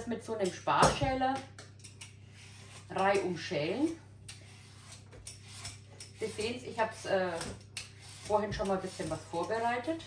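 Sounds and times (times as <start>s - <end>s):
vegetable peeler scraping squash: 1.9s - 10.0s.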